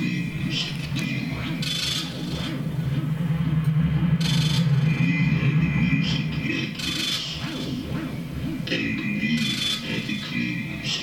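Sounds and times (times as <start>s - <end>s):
low noise drone: 0.0s - 11.0s.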